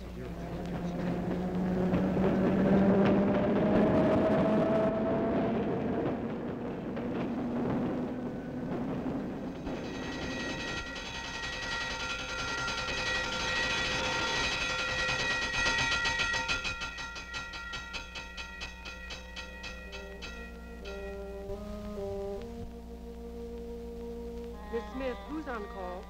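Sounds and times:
fast even clatter: 0:00.0 - 0:21.1
street traffic noise: 0:00.0 - 0:26.0
high ringing chord: 0:07.6 - 0:26.0.

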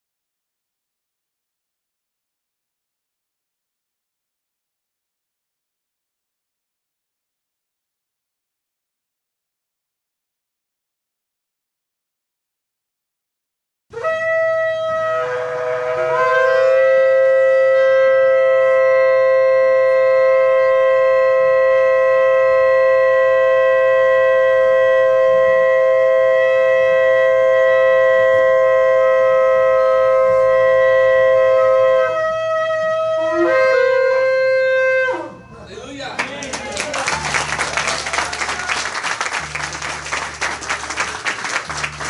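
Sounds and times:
shofar blast: 0:14.0 - 0:35.5, 0:37.1 - 0:42.0.

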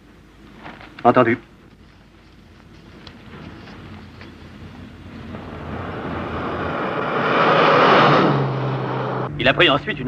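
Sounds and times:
car passing by: 0:04.8 - 0:09.3.

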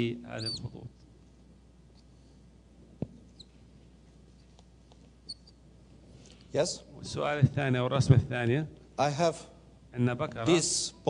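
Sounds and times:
low room hum: 0:00.0 - 0:11.0
marker squeaking on whiteboard: 0:00.4 - 0:00.8, 0:03.3 - 0:03.6, 0:04.3 - 0:05.6.

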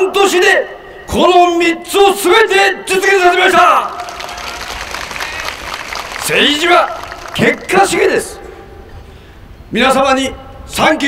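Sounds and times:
amplified speech: 0:00.0 - 0:04.1, 0:06.2 - 0:08.6
crowd applauding: 0:03.9 - 0:07.9.

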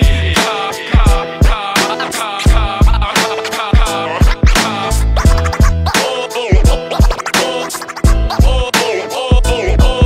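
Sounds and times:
hip-hop beat: 0:00.0 - 0:10.0
turntable scratching: 0:00.0 - 0:10.0.

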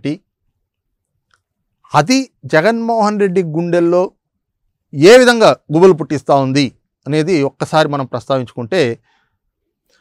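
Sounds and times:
man speaking: 0:01.9 - 0:04.2, 0:04.9 - 0:09.0.

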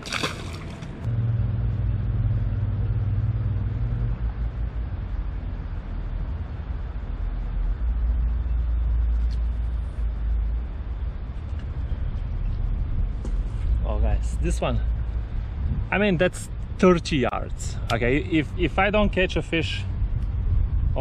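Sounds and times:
low engine rumble: 0:00.0 - 0:21.0.

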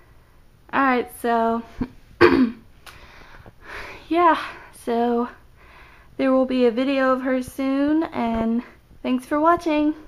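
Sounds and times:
girl clearing her throat: 0:02.2 - 0:02.6
breathing: 0:02.9 - 0:04.8, 0:05.5 - 0:06.2.

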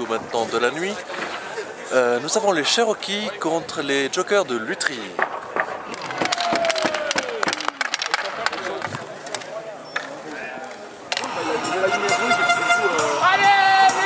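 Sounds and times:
voices in the background: 0:00.0 - 0:14.0
sharp clacks and knocks: 0:04.8 - 0:10.2.

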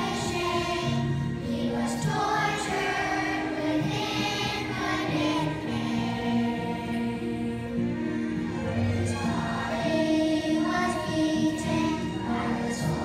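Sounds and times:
children's choir singing: 0:00.0 - 0:13.0.

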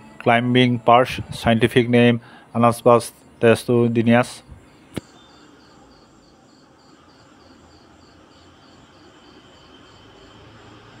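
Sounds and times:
low background hiss: 0:00.0 - 0:11.0
insect chirping: 0:02.2 - 0:11.0.

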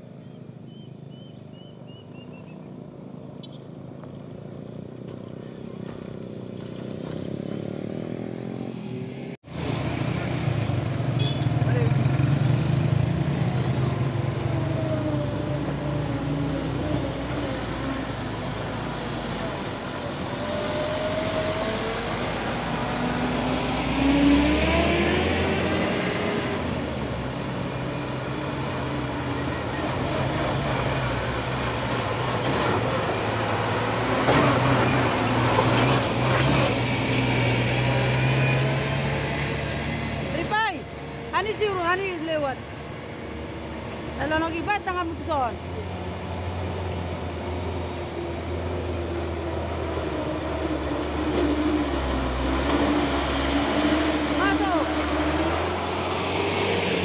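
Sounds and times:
truck engines rumbling uphill: 0:00.0 - 0:57.0
tyre and road noise: 0:00.0 - 0:57.0.

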